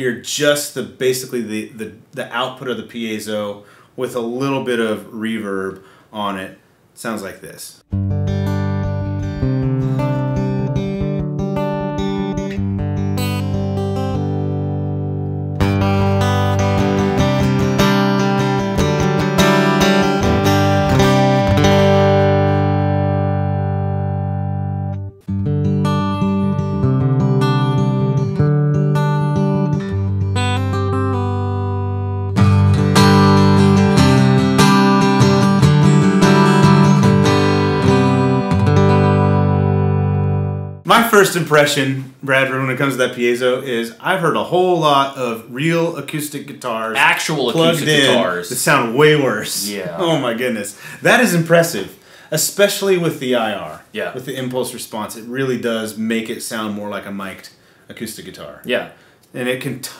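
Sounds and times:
electric guitar strummed chords: 7.9s - 40.8s, 47.5s - 48.3s.

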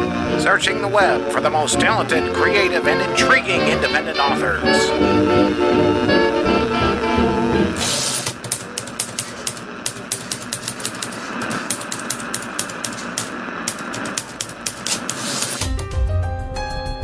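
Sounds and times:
music with held tones: 0.0s - 7.8s, 15.6s - 17.0s
typewriter keys clacking: 8.1s - 15.8s.

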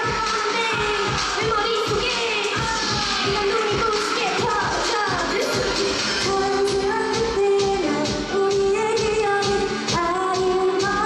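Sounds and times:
dance backing track with beat: 0.0s - 11.0s
young woman singing into microphone: 0.0s - 11.0s.

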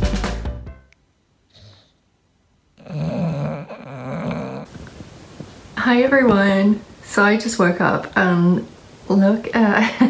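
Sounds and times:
dog snoring: 1.5s - 2.0s, 2.8s - 4.8s.

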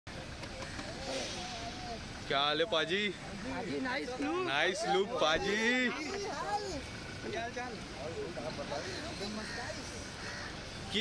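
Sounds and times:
faint voices: 0.1s - 11.0s
traffic on a wet road: 0.1s - 11.0s.

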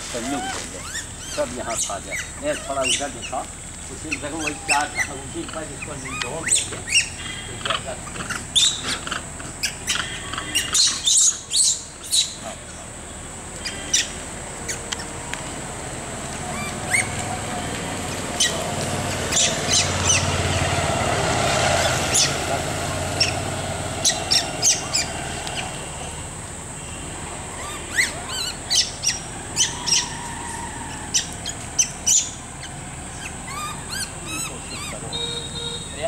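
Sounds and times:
birds chirping: 0.0s - 36.0s.

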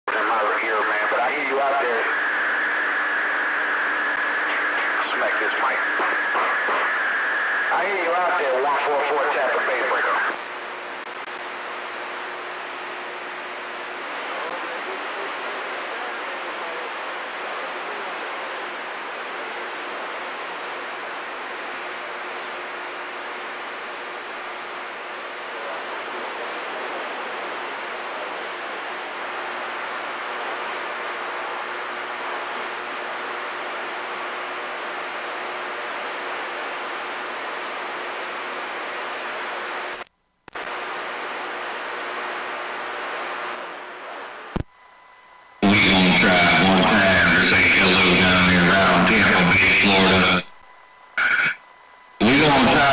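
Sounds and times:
faint steady hum: 0.1s - 52.9s
radio static hiss: 0.1s - 52.9s.

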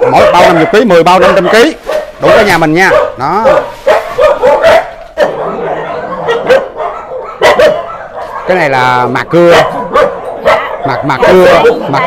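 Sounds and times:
dogs barking: 0.0s - 12.0s
drawn-out dog call: 0.0s - 12.0s.

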